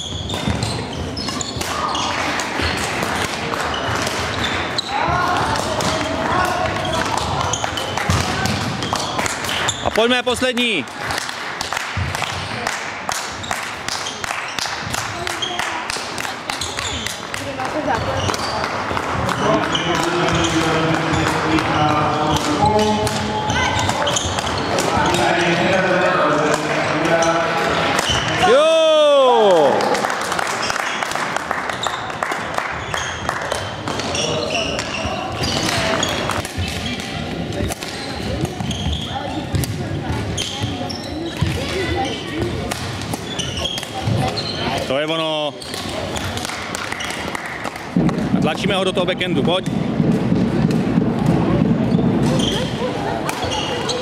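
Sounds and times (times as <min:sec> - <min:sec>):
chatter of voices: 0:12.3 - 0:30.4, 0:33.8 - 0:54.0
racket hitting shuttlecock: 0:33.4 - 0:40.7, 0:42.4 - 0:44.9.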